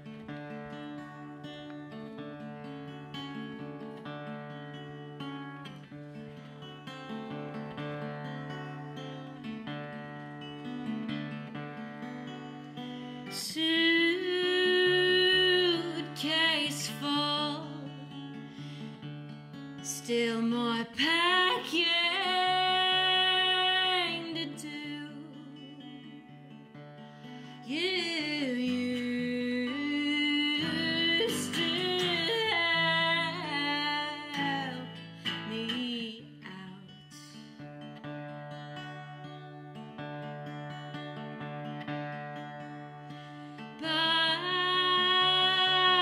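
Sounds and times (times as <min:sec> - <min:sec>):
guitar playing: 0:00.0 - 0:46.0.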